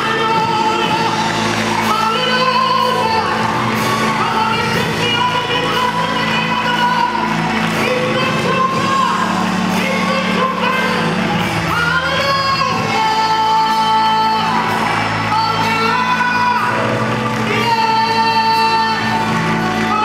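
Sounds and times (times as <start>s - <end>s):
band backing: 0.0s - 20.0s
gospel vocalist singing: 0.0s - 20.0s.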